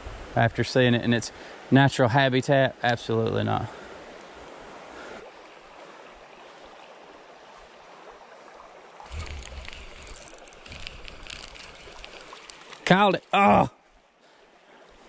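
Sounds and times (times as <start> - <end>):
creek water over stones: 0.0 - 15.0
camera handling rumble and clicks: 9.2 - 12.6.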